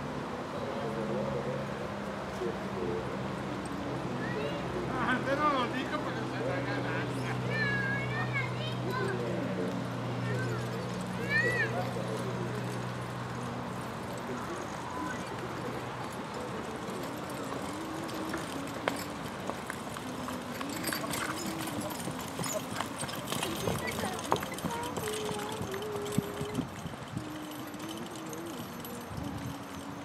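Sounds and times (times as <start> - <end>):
voices talking: 0.3 - 30.0
hooves clip-clopping on dirt: 5.0 - 30.0.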